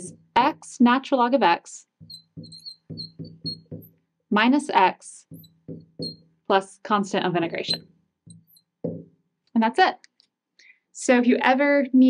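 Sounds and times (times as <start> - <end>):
marker squeaking on glass: 1.9 - 4.0, 5.2 - 6.4, 7.4 - 9.0
soft low thud: 2.0 - 3.9, 5.3 - 6.2, 7.5 - 9.2.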